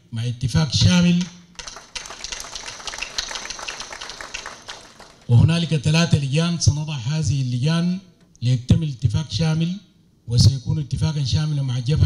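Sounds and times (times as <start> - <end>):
audience applause: 1.6 - 5.5.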